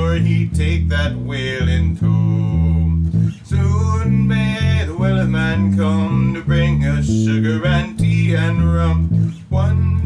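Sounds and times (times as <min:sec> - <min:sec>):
electric bass line: 0:00.0 - 0:10.0
man singing: 0:00.0 - 0:10.0.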